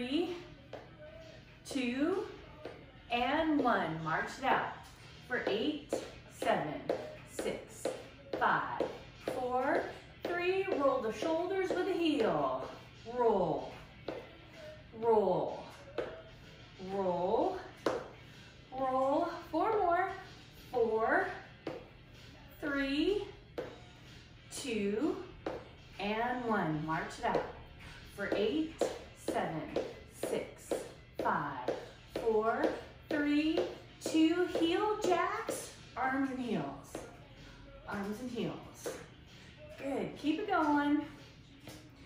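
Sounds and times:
woman talking: 0.0s - 16.2s, 16.8s - 18.0s, 18.7s - 21.7s, 22.5s - 23.4s, 24.5s - 25.4s, 26.0s - 39.0s, 39.6s - 41.9s.

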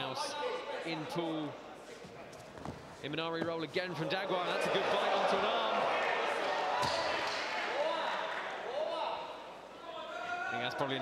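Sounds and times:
crowd cheering and shouting: 4.3s - 11.0s.

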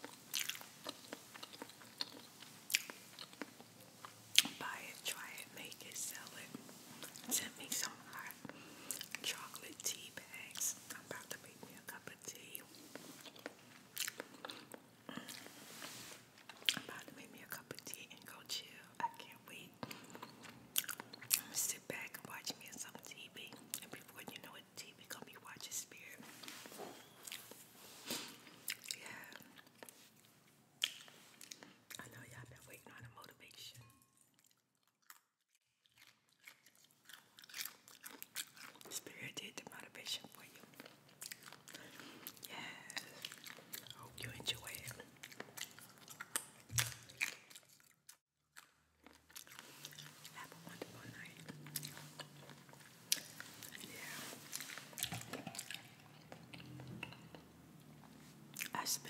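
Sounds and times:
person chewing noodles: 0.0s - 4.6s, 6.5s - 9.6s, 12.5s - 17.2s, 19.0s - 21.5s, 26.3s - 32.0s, 33.9s - 39.0s, 40.3s - 58.8s.

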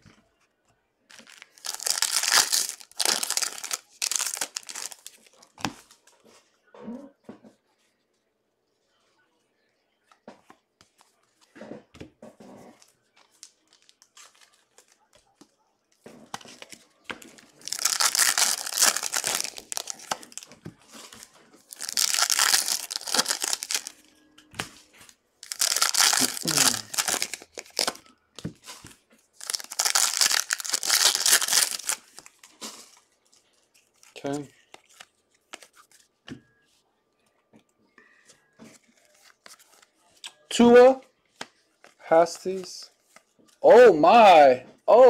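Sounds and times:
foil wrappers tearing and crinkling: 1.1s - 5.3s, 17.4s - 20.5s, 21.7s - 24.0s, 25.4s - 28.0s, 29.4s - 33.0s.

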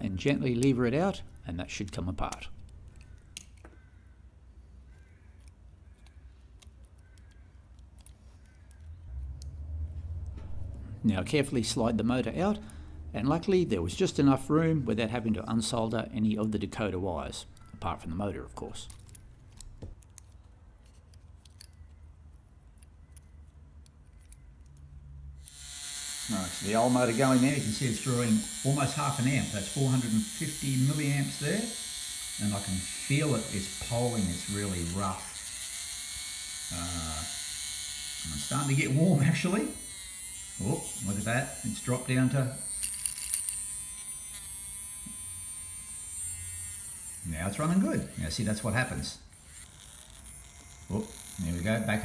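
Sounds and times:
plastic and metal clicks: 5.4s - 9.0s, 18.8s - 22.0s
small motor whirring: 25.4s - 52.0s.

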